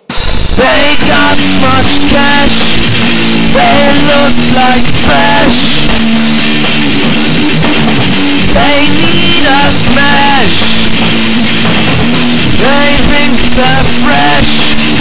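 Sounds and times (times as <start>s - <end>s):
rock band playing: 0.0s - 15.0s
sliding high-pitched guitar line: 0.2s - 15.0s.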